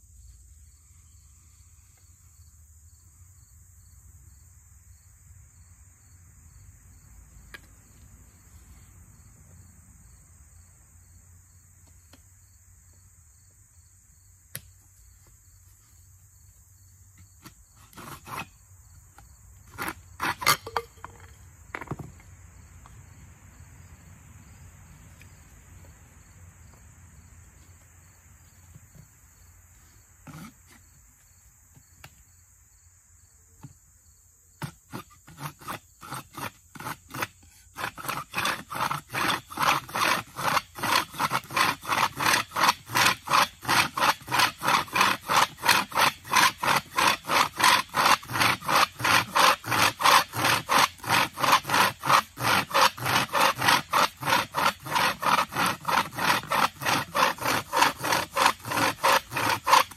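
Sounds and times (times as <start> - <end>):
crickets chirring: 0.0 - 59.9
insects droning: 0.0 - 59.9.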